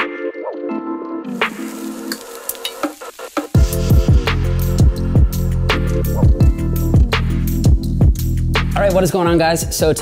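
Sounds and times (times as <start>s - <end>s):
meat sizzling in a pan: 1.3s - 4.9s
electronic music with deep bass: 3.6s - 8.8s.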